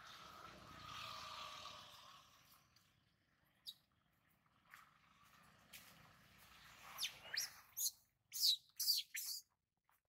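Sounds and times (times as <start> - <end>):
infant monkey squeaking calls: 7.0 - 9.4.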